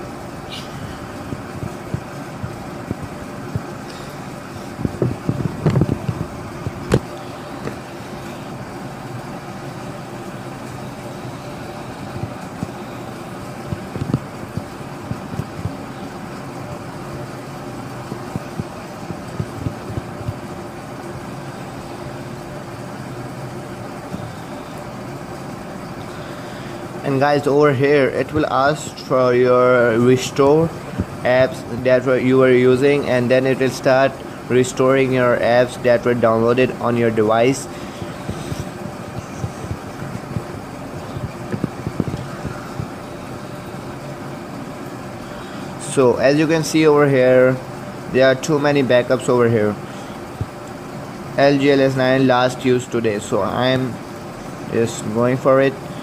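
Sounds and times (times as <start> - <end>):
background hum: 0.0 - 56.0.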